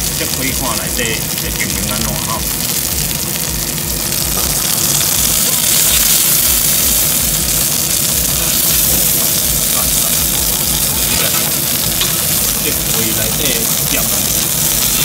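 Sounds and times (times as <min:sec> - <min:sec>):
duck breast sizzling in a pan: 0:00.0 - 0:15.0.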